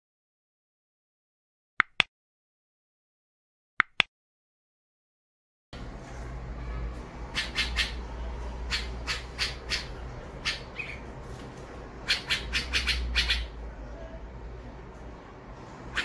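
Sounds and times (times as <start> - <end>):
fledgling birds squawking: 7.0 - 13.6, 15.8 - 16.0.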